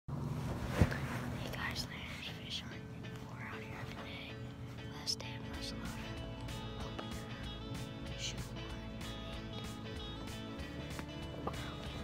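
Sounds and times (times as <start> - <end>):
person whispering: 1.3 - 6.1, 8.1 - 8.5.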